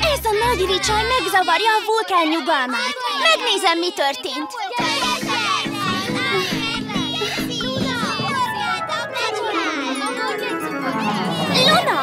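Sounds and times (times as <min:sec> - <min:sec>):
squeaky voices chattering: 0:00.0 - 0:12.0
cartoon music with pulsing bass: 0:04.8 - 0:12.0.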